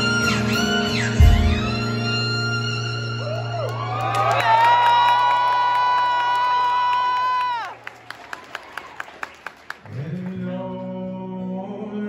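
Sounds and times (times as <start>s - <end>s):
fiddle holding high note: 0.0s - 3.8s
audience cheering: 3.1s - 9.8s.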